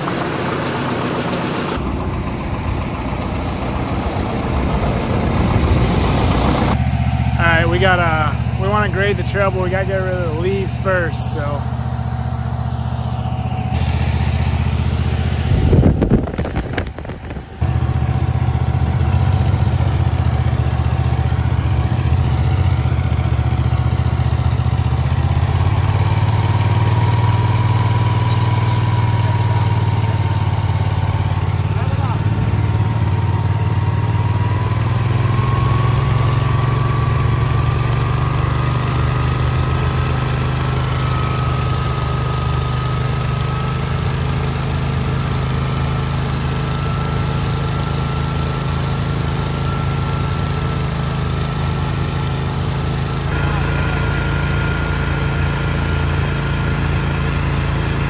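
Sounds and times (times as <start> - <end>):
leaf blower engine drone: 0.0 - 58.0
leaf blower fan whine: 0.0 - 58.0.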